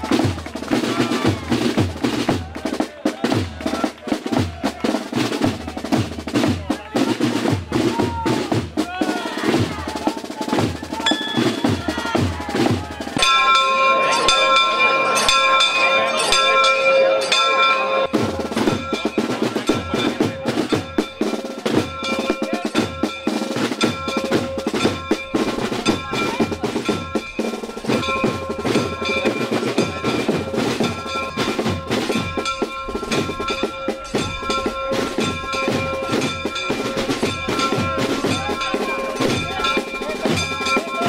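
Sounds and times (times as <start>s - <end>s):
snare and bass drums playing: 0.0s - 13.6s, 18.1s - 41.0s
bell ringing: 10.8s - 41.0s.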